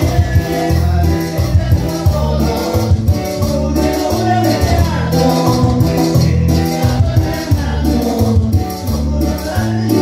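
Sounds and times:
bass line: 0:00.0 - 0:10.0
live band playing: 0:00.0 - 0:10.0
people singing: 0:00.0 - 0:10.0.

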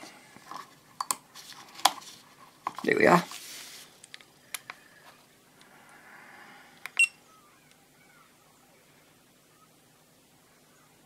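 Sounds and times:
faint handling noise: 0:00.0 - 0:05.7.

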